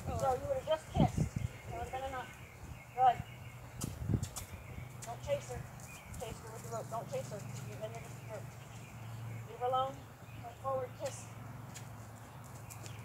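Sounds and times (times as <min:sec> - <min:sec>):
horse hoofbeats on grass: 0:03.8 - 0:09.0.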